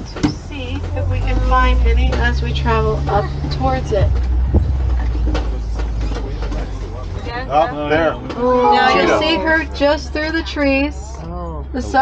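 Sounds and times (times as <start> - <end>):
truck engine and road drone: 0.0 - 12.0.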